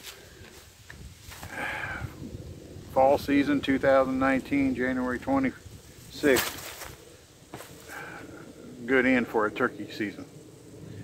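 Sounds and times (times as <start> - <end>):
soft rustle: 0.0 - 1.6, 5.0 - 8.3.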